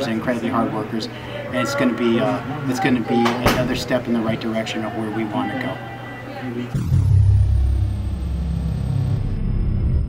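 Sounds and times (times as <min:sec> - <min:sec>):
deep low rumble: 0:06.8 - 0:10.0.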